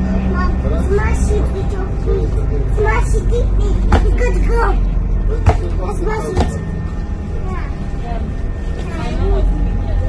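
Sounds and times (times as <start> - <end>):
vehicle cabin rumble: 0.0 - 10.0
child chattering: 0.4 - 6.4.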